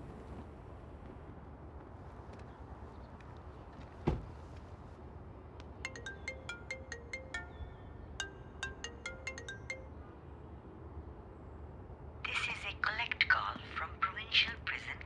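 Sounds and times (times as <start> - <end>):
mobile phone ringtone: 5.9 - 10.2.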